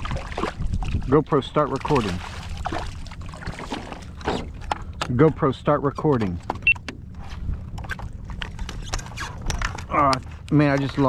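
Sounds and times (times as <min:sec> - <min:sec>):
water splashing and dripping: 0:00.0 - 0:05.4
wind rumble on microphone: 0:00.0 - 0:05.5, 0:06.4 - 0:11.0.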